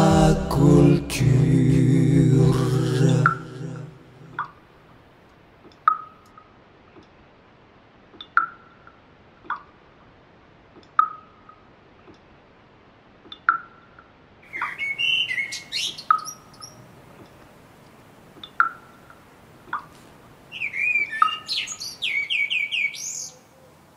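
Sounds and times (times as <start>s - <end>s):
songbirds singing: 14.4s - 17.4s, 18.2s - 23.9s.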